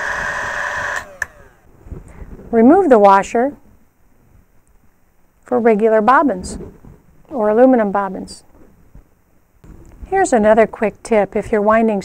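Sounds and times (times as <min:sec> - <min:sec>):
bobbin winder motor whining: 0:00.0 - 0:01.7.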